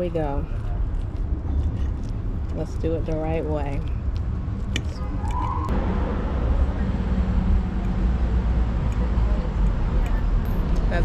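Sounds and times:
passing cars rumbling: 0.0 - 11.0.

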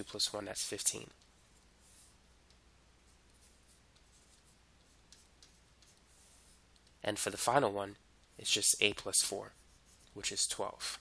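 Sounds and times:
low steady hum: 0.0 - 11.0
stylus scratching on tablet: 0.1 - 7.0, 8.2 - 10.5.

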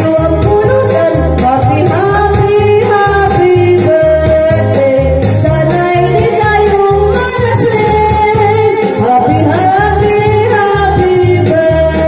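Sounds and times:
backing track with bass beat: 0.0 - 12.0
woman singing into microphone: 0.0 - 12.0.

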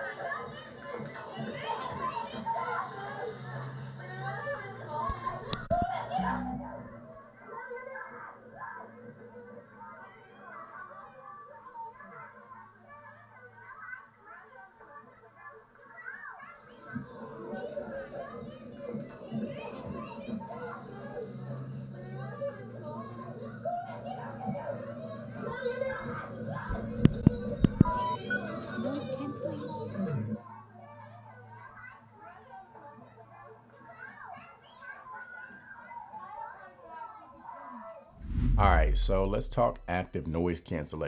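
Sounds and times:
children playing and chattering: 0.0 - 38.2.

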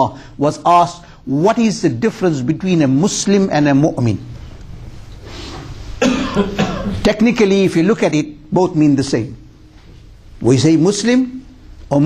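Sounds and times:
man coughing: 6.0 - 7.1.

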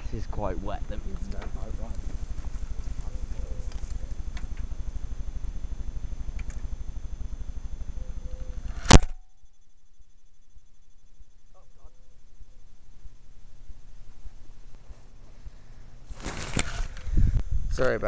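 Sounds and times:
wind rumbling on microphone: 16.4 - 17.9.

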